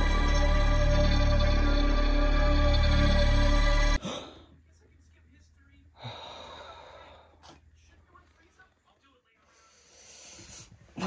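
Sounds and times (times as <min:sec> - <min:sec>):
person breathing: 0:06.0 - 0:07.6, 0:09.4 - 0:10.9.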